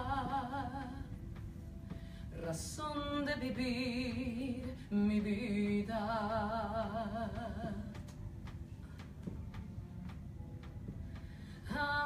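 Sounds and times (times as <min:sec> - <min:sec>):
faint steady ticking: 0:00.0 - 0:12.0
low room noise rumble: 0:00.0 - 0:12.0.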